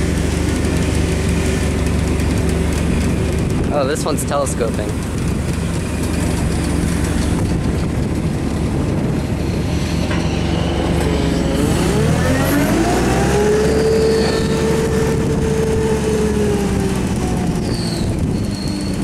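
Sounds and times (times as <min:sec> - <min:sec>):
forklift engine running: 0:00.0 - 0:19.0
hydraulic lift whine: 0:00.0 - 0:19.0.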